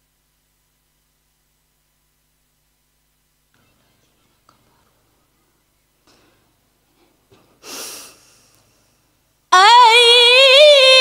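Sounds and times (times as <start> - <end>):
faint breath: 6.1 - 9.2.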